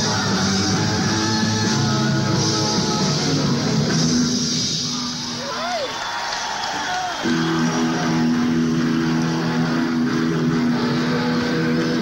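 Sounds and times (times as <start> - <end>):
live hard rock band: 0.0 - 5.4.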